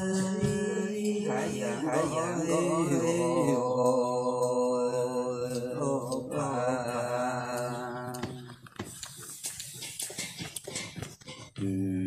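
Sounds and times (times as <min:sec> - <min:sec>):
person singing folk song: 0:00.0 - 0:08.7.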